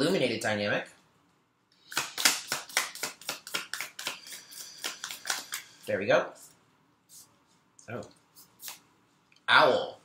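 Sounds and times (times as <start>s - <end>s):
cards being shuffled: 1.9s - 5.8s, 8.3s - 8.8s.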